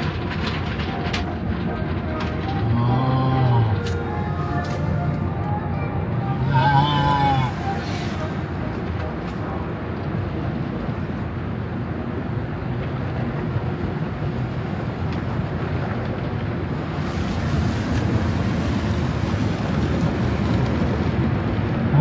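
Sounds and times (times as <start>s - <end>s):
water spray rushing: 16.9s - 19.7s
car wash brushes scrubbing: 16.9s - 20.2s.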